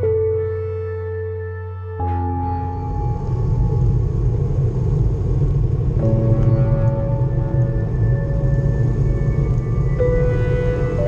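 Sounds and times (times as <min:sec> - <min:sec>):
wind buffeting microphone: 0:02.8 - 0:11.0.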